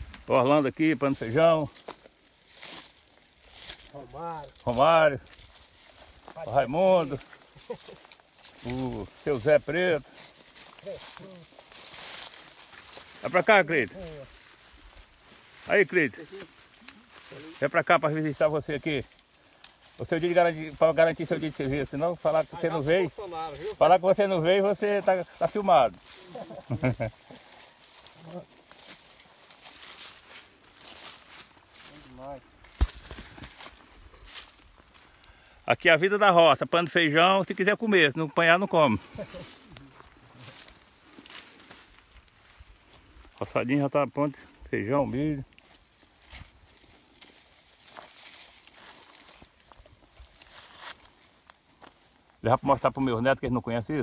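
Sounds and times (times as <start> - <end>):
dry stalks rustling and crackling: 0.0 - 53.2
low outdoor background: 0.0 - 54.0.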